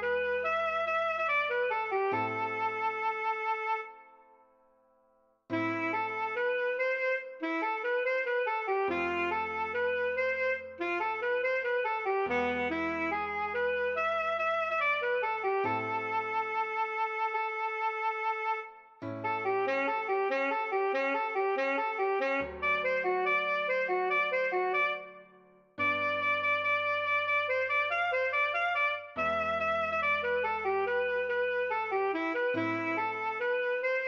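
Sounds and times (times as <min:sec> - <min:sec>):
alto saxophone melody: 0:00.0 - 0:04.3, 0:05.5 - 0:34.0.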